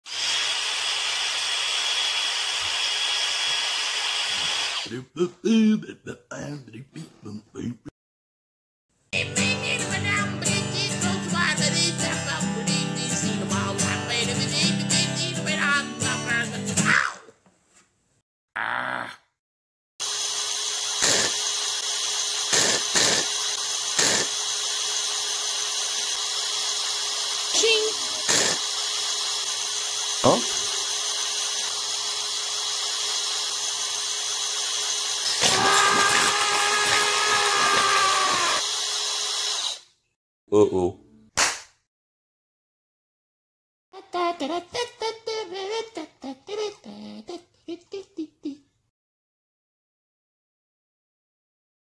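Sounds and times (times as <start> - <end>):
electric power drill whining: 0.0 - 4.9, 20.0 - 39.9.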